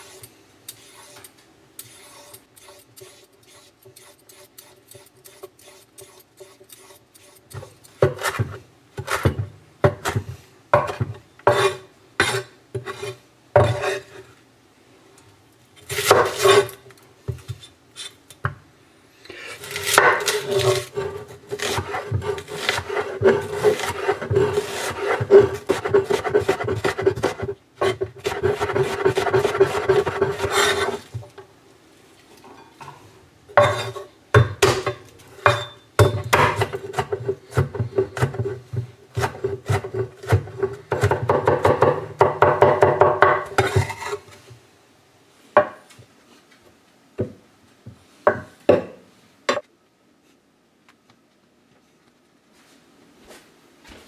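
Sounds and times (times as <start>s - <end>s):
knife chopping on wooden board: 33.6s - 44.0s
cleaver chopping on wooden board: 34.4s - 38.4s.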